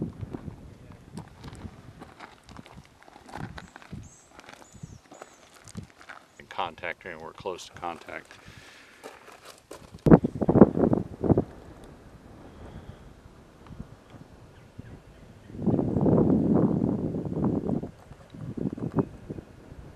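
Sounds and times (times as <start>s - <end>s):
wind buffeting microphone: 0.0s - 6.2s, 9.7s - 19.9s.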